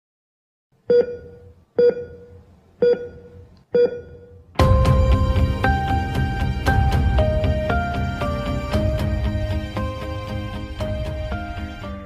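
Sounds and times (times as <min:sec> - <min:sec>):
heart-rate monitor beeping: 0:00.9 - 0:04.5.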